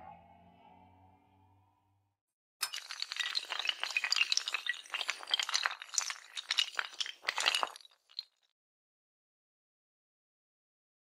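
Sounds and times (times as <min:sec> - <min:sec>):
tiles toppling and clattering: 0:02.6 - 0:08.4.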